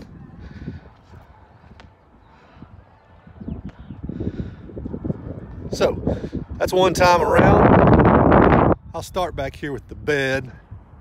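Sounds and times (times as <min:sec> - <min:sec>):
footsteps on pavement: 0:00.0 - 0:05.7
wind noise on microphone: 0:00.0 - 0:11.0.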